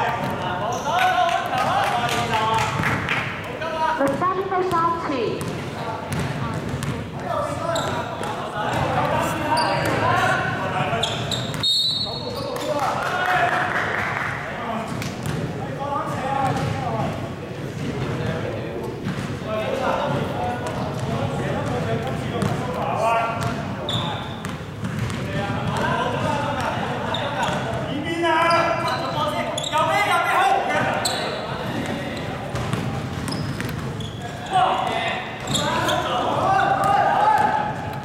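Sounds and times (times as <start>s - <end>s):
basketball bouncing on court: 4.0s - 10.0s, 14.9s - 15.5s, 16.4s - 17.2s, 20.1s - 22.8s, 23.4s - 27.9s, 31.7s - 34.1s.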